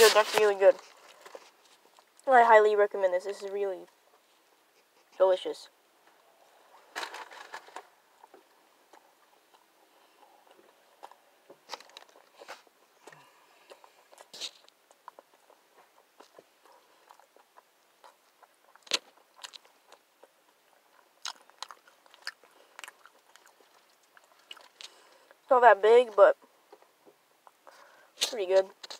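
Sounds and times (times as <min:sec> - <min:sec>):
chewing and crunching: 0:00.0 - 0:02.6, 0:03.2 - 0:25.5, 0:26.1 - 0:28.9.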